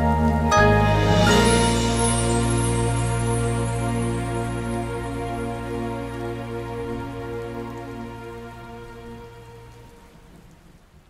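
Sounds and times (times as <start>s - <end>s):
held music chord: 0.0s - 9.9s
rain: 0.0s - 11.0s.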